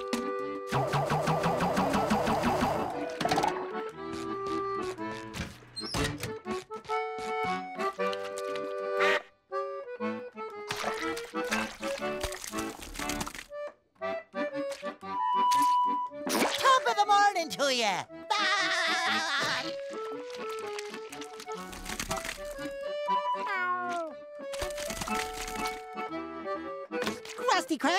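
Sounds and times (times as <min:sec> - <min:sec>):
bouncy cartoon music: 0:00.0 - 0:27.9.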